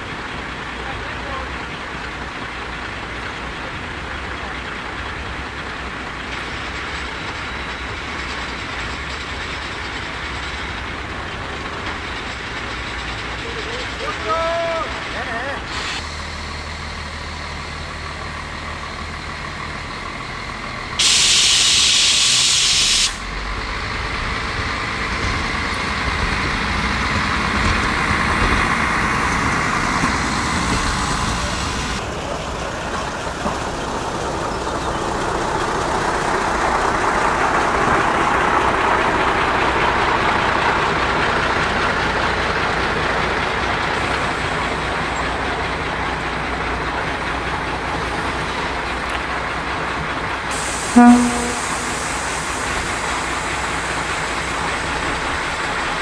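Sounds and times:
diesel engine rumble: 0.0s - 56.0s
compressed air hissing: 21.0s - 23.2s, 50.5s - 54.6s.

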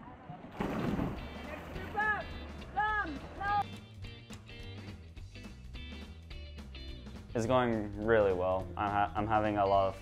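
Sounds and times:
short water splash: 0.5s - 2.0s
background music with bass: 1.0s - 10.0s.

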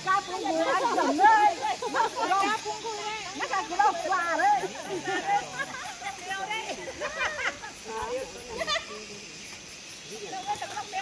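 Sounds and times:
women talking and calling out: 0.0s - 9.3s, 10.0s - 11.0s.

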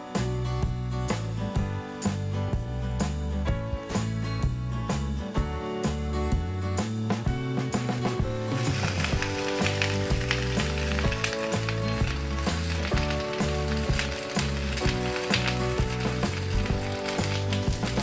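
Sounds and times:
background music: 0.0s - 18.0s
boiling water sizzling: 8.1s - 18.0s.

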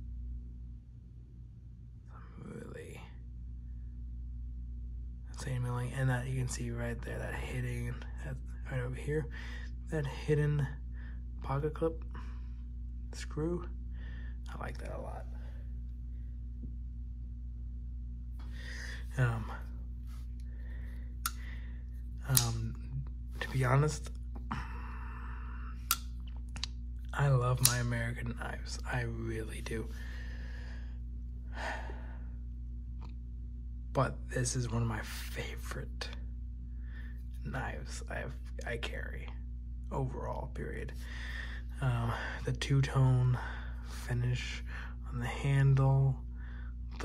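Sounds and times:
steady low hum: 0.0s - 47.0s
man speaking quietly: 2.1s - 3.2s, 14.4s - 15.5s, 19.0s - 19.8s, 22.2s - 24.6s, 27.2s - 30.0s
soft hiss: 5.2s - 33.3s.

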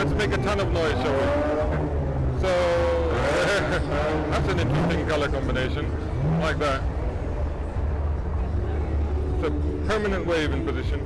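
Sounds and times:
cars driving past: 0.0s - 10.5s.

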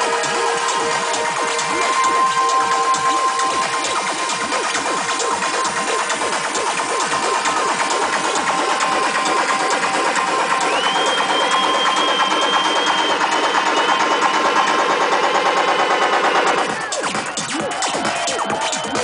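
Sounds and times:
high held synth tone: 0.0s - 5.4s
live techno over sound system: 0.0s - 19.0s.

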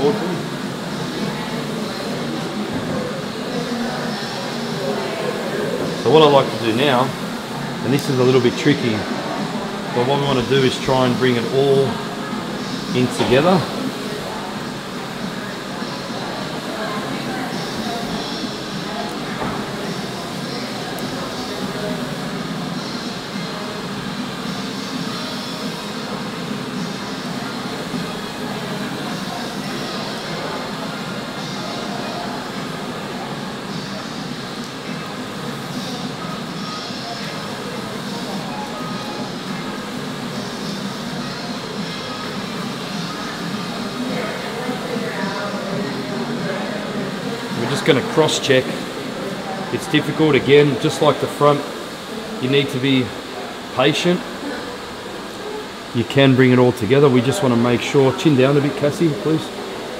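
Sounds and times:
indistinct voices: 0.0s - 59.9s
steady background noise: 0.0s - 59.9s.

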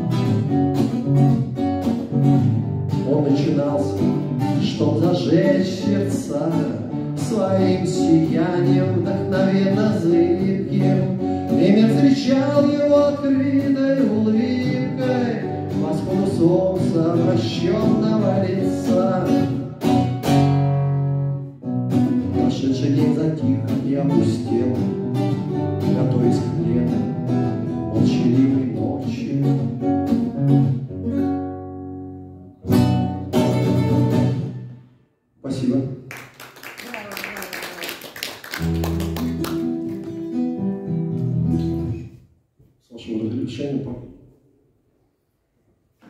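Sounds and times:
acoustic guitar strummed and picked: 0.0s - 35.0s, 38.6s - 42.2s.

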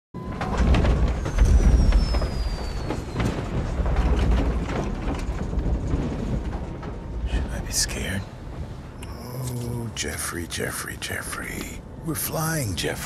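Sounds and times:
rattles and knocks: 0.2s - 9.1s
deep cabin rumble: 0.2s - 13.0s
thin whistle sliding down: 1.2s - 3.4s.

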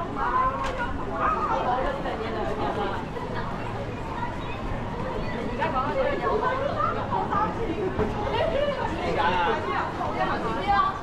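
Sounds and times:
low city street background: 0.0s - 11.0s
pedestrians chatting: 0.0s - 11.0s.

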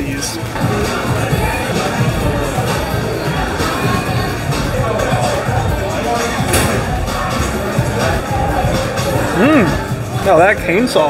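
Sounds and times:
background music: 0.0s - 11.0s
diners chattering: 0.0s - 11.0s.

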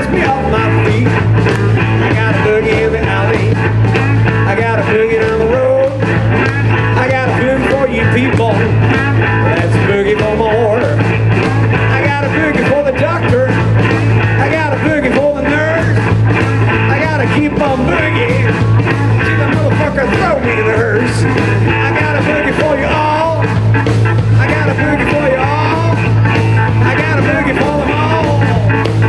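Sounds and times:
drums: 0.0s - 29.0s
electric guitar: 0.0s - 29.0s
heavy bass line: 0.0s - 29.0s.

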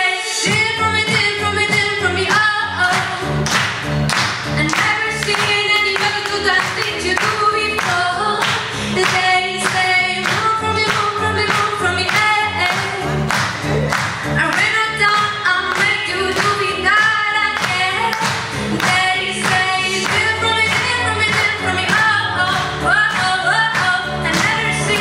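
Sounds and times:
choir singing pop song: 4.6s - 13.4s, 14.4s - 25.0s.

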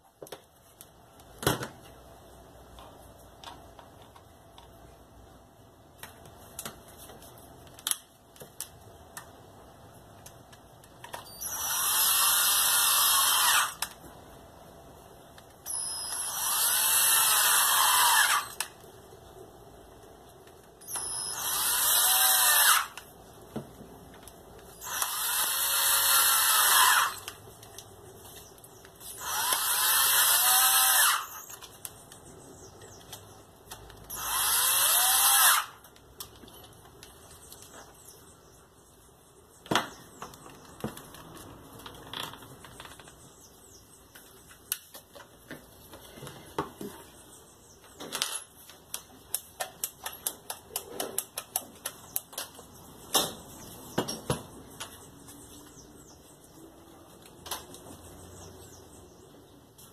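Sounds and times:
cordless drill motor whining: 11.2s - 14.0s, 15.7s - 18.7s, 20.8s - 23.0s, 24.8s - 27.4s, 29.1s - 31.7s, 34.1s - 35.8s.

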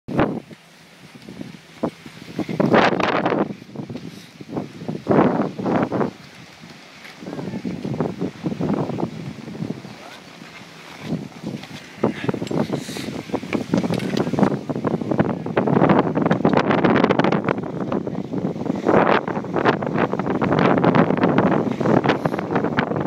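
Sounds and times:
wind buffeting microphone: 0.1s - 23.0s
skis scraping over packed snow: 1.0s - 14.9s.

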